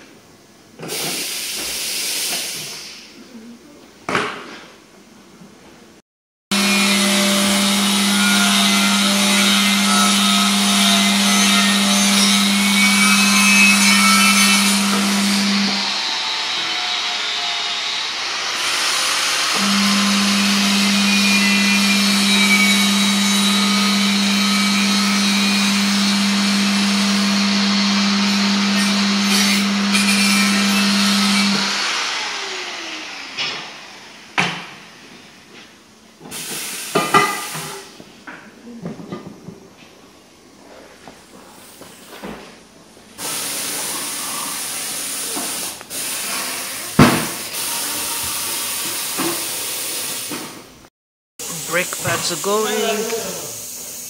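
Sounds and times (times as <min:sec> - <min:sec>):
power tool grinding metal rim: 0:06.5 - 0:34.0, 0:43.2 - 0:50.3, 0:51.4 - 0:54.0.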